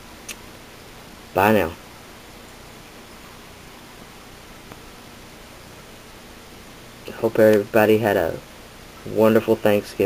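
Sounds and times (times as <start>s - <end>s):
low hiss of recording noise: 0.0s - 10.0s.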